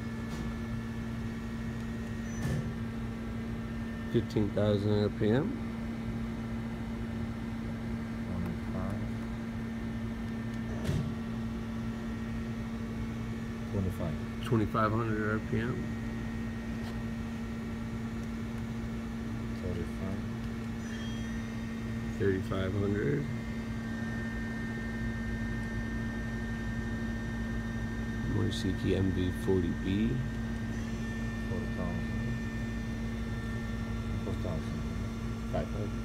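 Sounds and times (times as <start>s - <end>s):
machine spindle humming: 0.0s - 36.0s
faint high whine: 19.5s - 36.0s.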